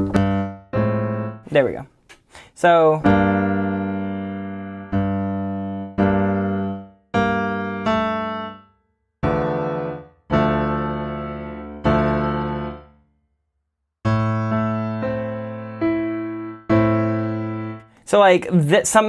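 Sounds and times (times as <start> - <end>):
piano block chords: 0.0 - 1.8, 3.0 - 13.1, 14.0 - 18.4.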